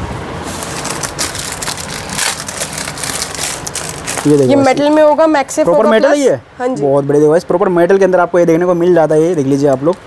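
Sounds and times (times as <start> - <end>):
plastic packaging crinkling: 0.6 - 5.1.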